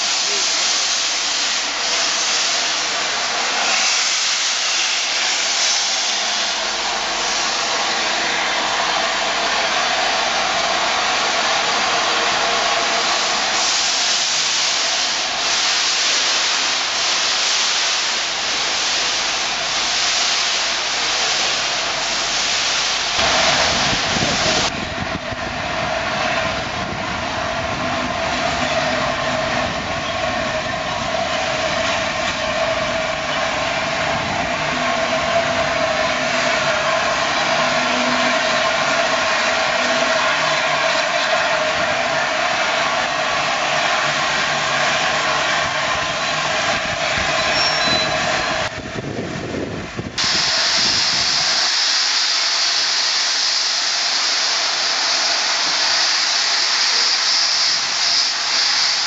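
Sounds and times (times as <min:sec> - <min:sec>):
steam locomotive droning: 0:00.0 - 0:59.0.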